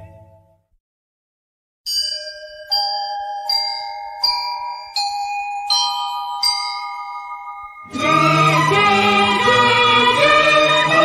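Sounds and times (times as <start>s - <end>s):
slow bell-like chime melody: 1.9s - 8.0s.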